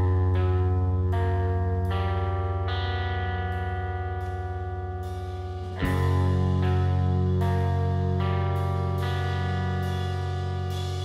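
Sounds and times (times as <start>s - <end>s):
distorted electric guitar: 0.0s - 11.0s
low drone: 0.0s - 11.0s.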